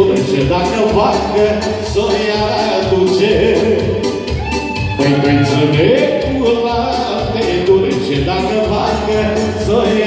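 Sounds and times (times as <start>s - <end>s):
live band playing dance music: 0.0s - 10.0s.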